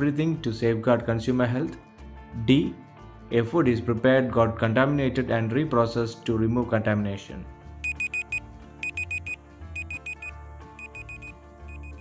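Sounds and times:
soft background music: 0:00.0 - 0:12.0
countdown timer beeping: 0:07.8 - 0:12.0.

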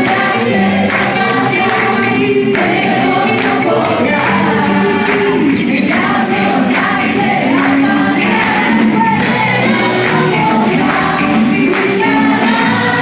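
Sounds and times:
church band playing: 0:00.0 - 0:13.0
group singing: 0:00.0 - 0:13.0.

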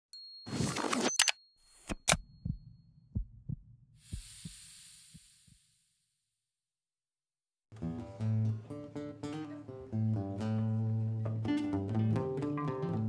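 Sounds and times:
heartbeat-like double thumps: 0:02.4 - 0:05.6
high hiss: 0:04.0 - 0:05.9.

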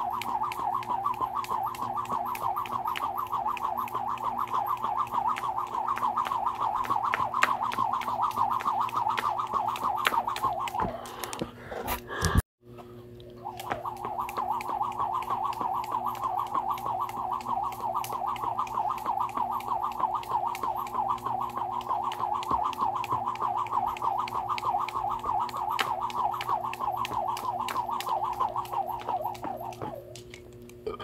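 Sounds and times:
jump rope whirring and slapping: 0:00.0 - 0:12.4, 0:13.4 - 0:30.7.

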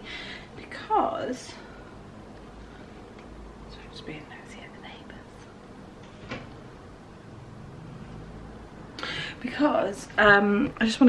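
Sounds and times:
woman speaking softly: 0:00.6 - 0:01.7, 0:03.7 - 0:05.5, 0:09.4 - 0:11.0.

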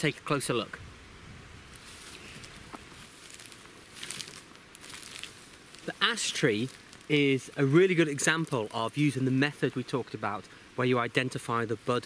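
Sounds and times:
footsteps through dry bracken: 0:01.7 - 0:10.5.

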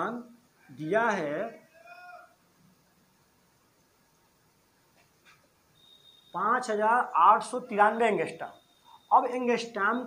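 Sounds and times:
faint high-pitched animal call: 0:01.6 - 0:02.4.

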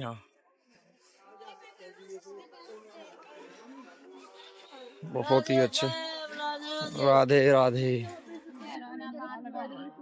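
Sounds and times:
faint chatter of voices: 0:00.0 - 0:10.0.

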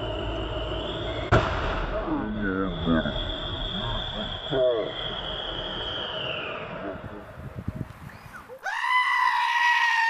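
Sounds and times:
road and engine noise: 0:00.0 - 0:01.4
tyre blowout bang: 0:00.5 - 0:07.7.

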